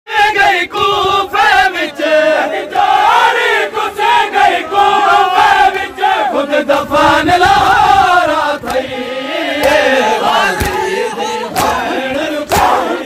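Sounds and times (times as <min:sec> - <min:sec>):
men chanting together: 0:00.1 - 0:13.0
sharp slaps: 0:09.6 - 0:09.8, 0:10.6 - 0:10.9, 0:11.6 - 0:12.9.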